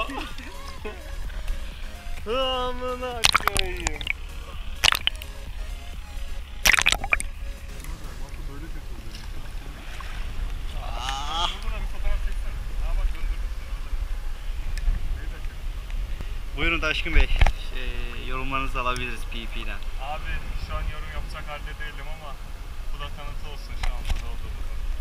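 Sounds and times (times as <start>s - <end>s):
steady low rumble: 0.0s - 10.9s
sea water splashing and sloshing: 3.1s - 8.0s, 8.9s - 10.8s
kayak paddle splashing: 3.1s - 10.9s.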